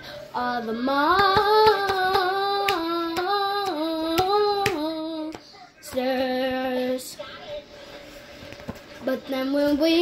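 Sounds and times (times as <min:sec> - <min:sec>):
child singing: 0:00.4 - 0:07.7, 0:09.0 - 0:10.0.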